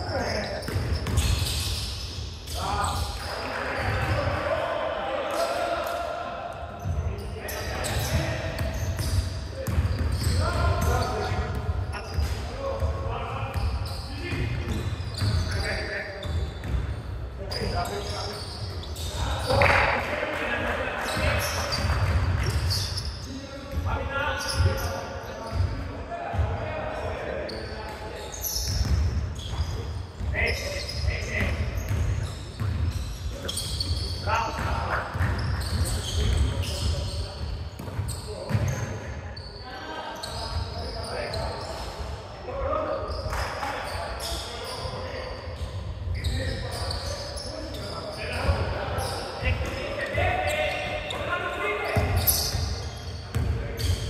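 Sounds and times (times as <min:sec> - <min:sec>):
basketball bouncing on wooden floor: 0:09.0 - 0:10.3.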